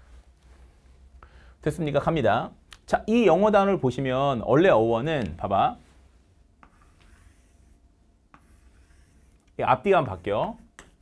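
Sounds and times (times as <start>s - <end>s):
chalk scratching on chalkboard: 6.6s - 11.0s
chalk tapping: 6.6s - 11.0s.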